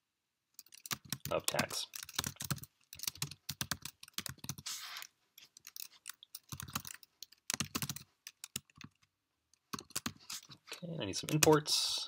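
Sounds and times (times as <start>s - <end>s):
typing on computer keyboard: 0.6s - 4.6s, 5.6s - 9.0s, 9.6s - 10.2s.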